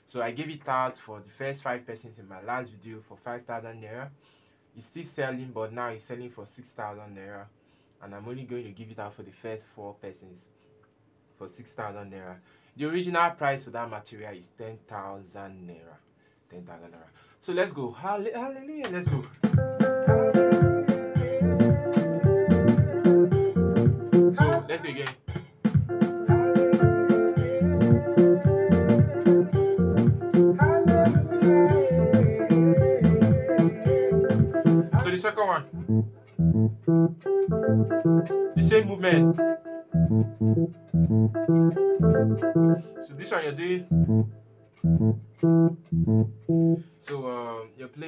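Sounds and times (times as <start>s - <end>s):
electronic keyboard groove: 18.9s - 46.9s.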